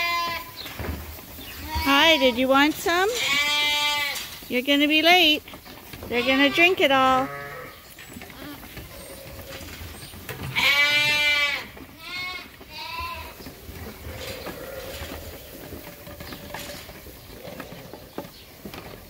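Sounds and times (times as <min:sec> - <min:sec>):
lambs bleating: 0:00.0 - 0:00.6, 0:01.6 - 0:02.4, 0:03.1 - 0:04.2, 0:06.0 - 0:09.7, 0:10.4 - 0:15.4.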